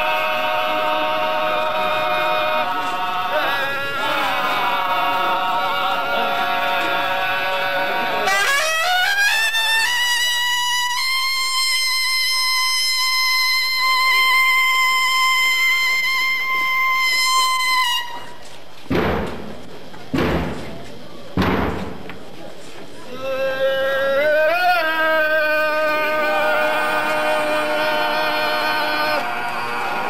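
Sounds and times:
trumpet playing: 0.0 - 18.4
heavy thumps: 18.9 - 22.3.

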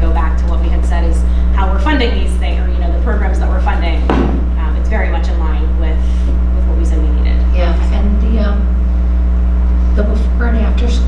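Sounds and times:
woman speaking: 0.0 - 8.8, 9.8 - 11.0
low electrical hum: 0.0 - 11.0
sharp knock: 4.1 - 4.5.

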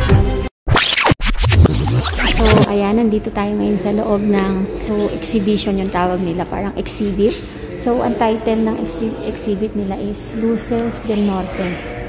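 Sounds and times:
record scratch effects: 0.7 - 2.7
voice: 2.2 - 11.8.

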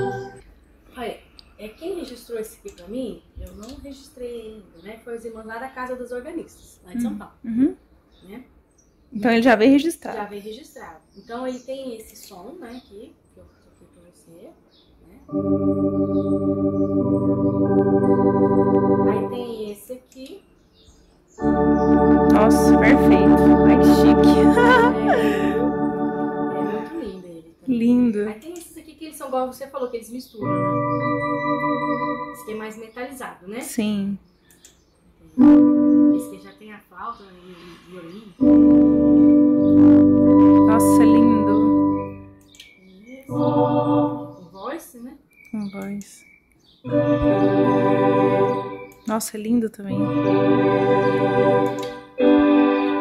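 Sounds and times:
organ playing chords: 0.0 - 0.4, 15.2 - 19.6, 21.4 - 27.1, 30.4 - 32.7, 35.4 - 36.5, 38.4 - 42.6, 43.3 - 44.5, 46.9 - 49.1, 49.9 - 53.0.

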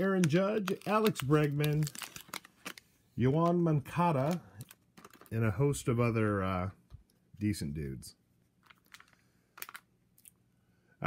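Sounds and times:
trading cards rustling and clicking: 0.0 - 5.5, 8.6 - 9.9.

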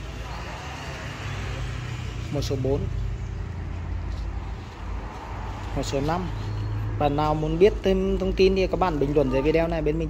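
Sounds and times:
faint voices: 0.0 - 10.0
low rumble of distant traffic: 0.0 - 10.0.

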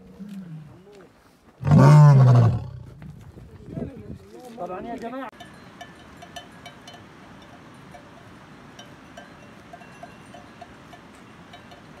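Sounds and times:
outdoor background hiss: 0.0 - 12.0
livestock bells clinking: 5.3 - 12.0.

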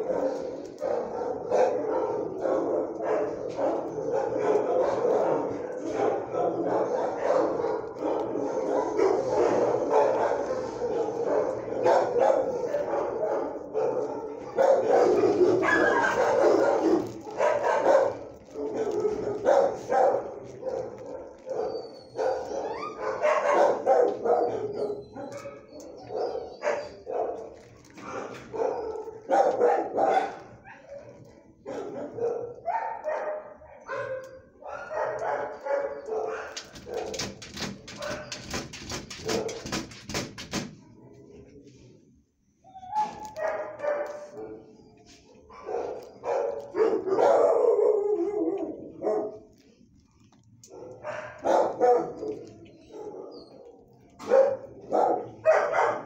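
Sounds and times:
dogs barking: 0.0 - 40.0, 42.8 - 49.6, 50.6 - 56.0.

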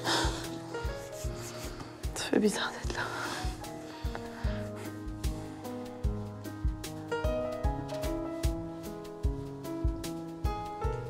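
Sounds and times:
soft music with pulsing bass: 0.0 - 11.0.

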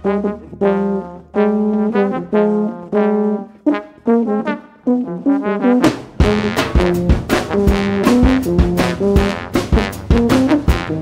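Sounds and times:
jazz brass trio playing: 0.0 - 11.0
sharp drum or cymbal hits: 5.9 - 11.0.

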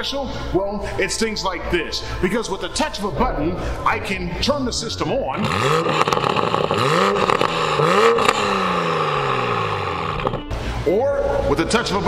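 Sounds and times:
car engine revving: 5.3 - 10.6.

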